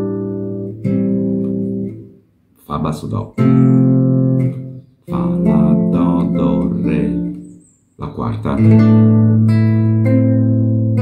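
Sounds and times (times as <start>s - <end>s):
classical guitar fingerstyle: 0.0s - 2.2s, 3.1s - 11.0s.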